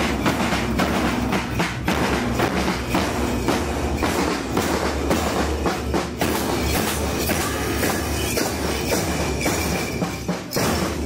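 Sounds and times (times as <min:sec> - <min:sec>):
snare drum clatter: 0:00.0 - 0:11.0.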